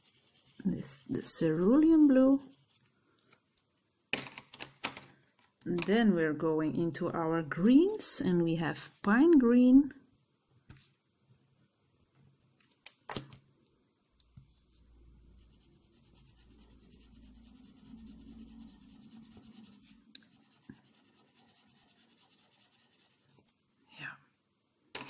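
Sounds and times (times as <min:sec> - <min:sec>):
coloured pencil rubbing on paper: 0:00.0 - 0:02.8, 0:15.3 - 0:23.5.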